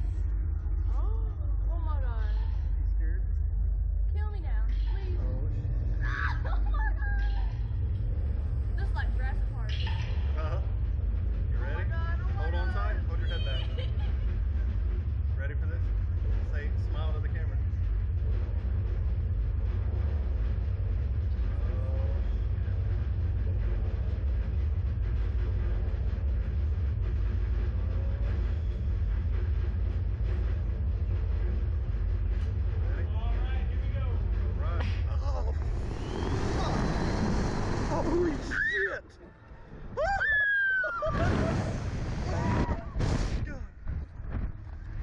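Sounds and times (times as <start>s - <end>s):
low rumble: 0.0s - 40.2s, 41.0s - 45.0s
wind rushing over microphone: 35.5s - 38.5s.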